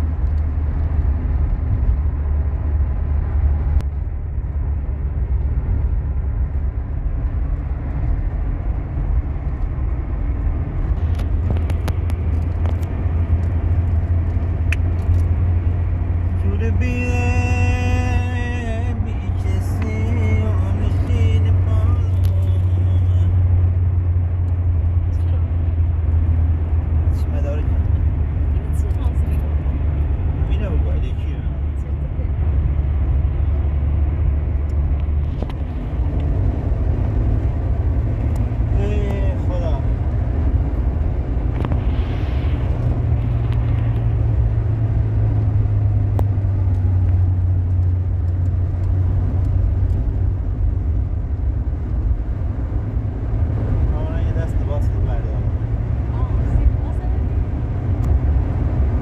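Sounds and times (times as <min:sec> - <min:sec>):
car engine and tyre rumble: 0:00.0 - 0:59.0.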